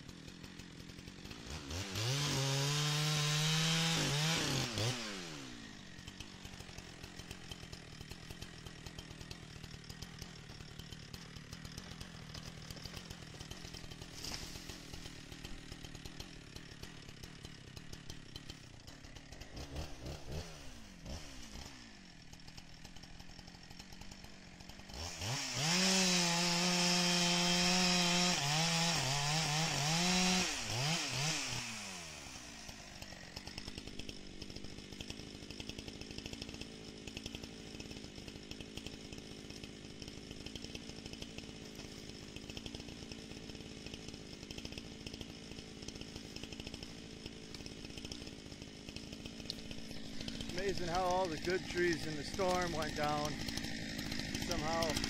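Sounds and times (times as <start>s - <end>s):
chainsaw revving and idling: 0.0s - 55.0s.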